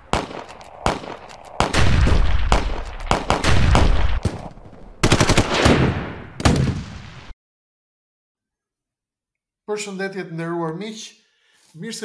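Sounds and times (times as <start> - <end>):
heavy gunshots with echoing tails: 0.0 - 7.3
machine-gun burst: 0.1 - 6.8.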